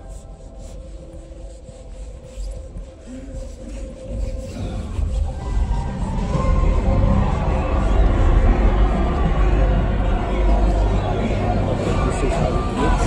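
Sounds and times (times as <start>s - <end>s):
muffled cinema soundtrack: 0.0s - 13.0s
deep low rumble: 4.1s - 13.0s.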